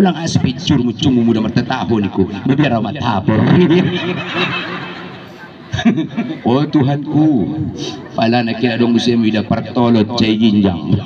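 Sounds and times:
man laughing into microphone: 0:03.4 - 0:06.9.

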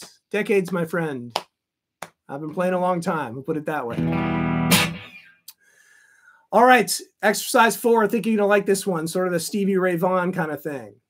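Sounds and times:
electric guitar strummed: 0:03.9 - 0:05.3.

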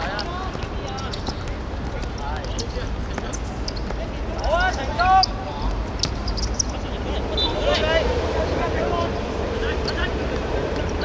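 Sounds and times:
players shouting calls: 0:00.0 - 0:11.0.

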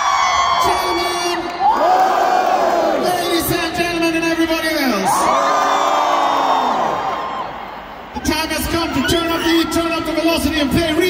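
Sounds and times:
crowd cheering: 0:00.0 - 0:03.8, 0:04.5 - 0:11.0.

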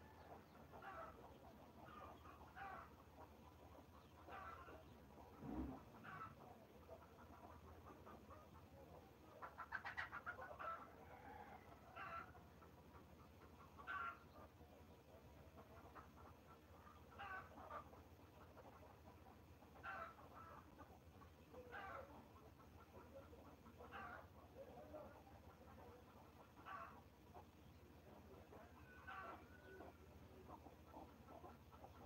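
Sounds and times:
faint animal calls: 0:00.0 - 0:32.0.

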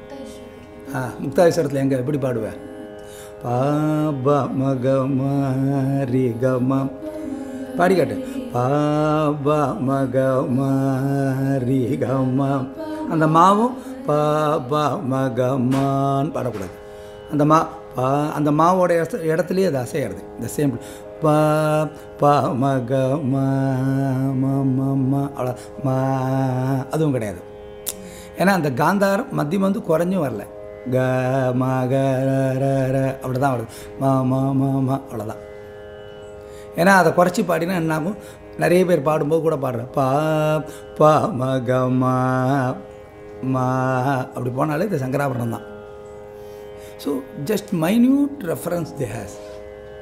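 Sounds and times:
man singing: 0:03.4 - 0:35.4, 0:36.8 - 0:45.7.

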